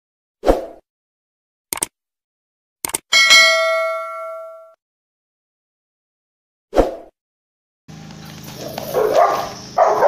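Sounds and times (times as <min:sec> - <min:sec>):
mouse double-click: 0:01.7 - 0:01.9, 0:02.8 - 0:03.0
notification bell ding: 0:03.1 - 0:04.8.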